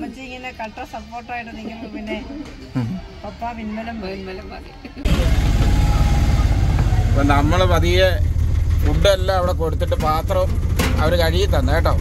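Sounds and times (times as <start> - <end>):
auto-rickshaw engine rumbling: 5.0 - 12.0.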